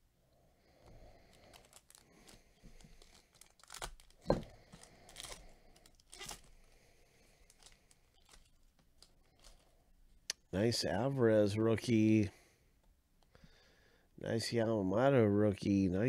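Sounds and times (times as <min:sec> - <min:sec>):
foil crinkling: 0:01.2 - 0:09.8
foil wrapper tearing: 0:01.3 - 0:09.7.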